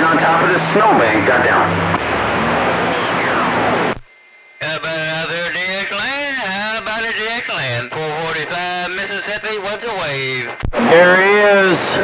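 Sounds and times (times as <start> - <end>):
radio hiss and static: 2.3 - 11.3
man's voice over radio: 4.6 - 10.7.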